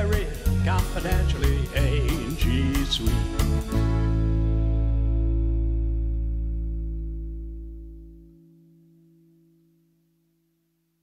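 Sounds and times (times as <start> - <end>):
acoustic guitar chord ringing: 3.0 - 10.5.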